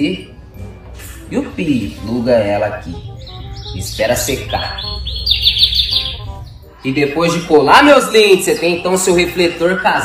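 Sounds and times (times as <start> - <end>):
bird chirping: 1.8 - 10.0.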